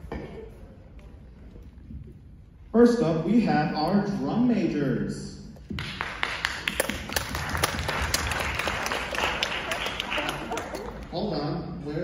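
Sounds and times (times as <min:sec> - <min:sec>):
audience clapping: 0:05.7 - 0:11.2.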